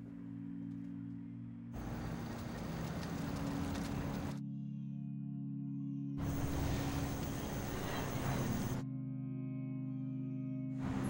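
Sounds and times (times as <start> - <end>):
low sustained music notes: 0.0 - 11.0
scooter and car traffic: 1.8 - 4.4, 6.2 - 8.8.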